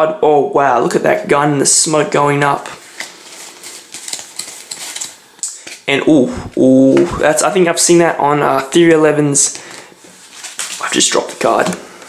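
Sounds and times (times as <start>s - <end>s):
playing cards clicking and rustling: 2.6s - 5.9s, 10.3s - 11.8s.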